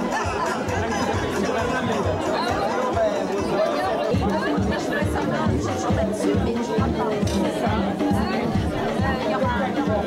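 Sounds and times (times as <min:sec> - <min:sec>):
music with steady bass beat: 0:00.0 - 0:10.0
people talking at once: 0:00.0 - 0:10.0.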